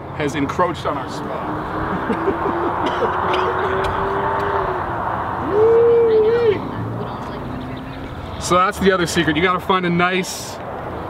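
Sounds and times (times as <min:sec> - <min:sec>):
person hooting oooh: 0:02.0 - 0:06.7.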